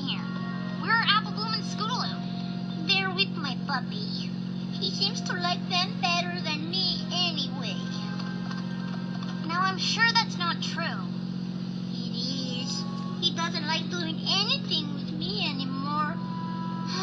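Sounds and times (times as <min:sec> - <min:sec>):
light background music: 0:00.0 - 0:17.0
steady low hum: 0:00.0 - 0:17.0
cartoon dialogue in high voices: 0:11.9 - 0:16.2.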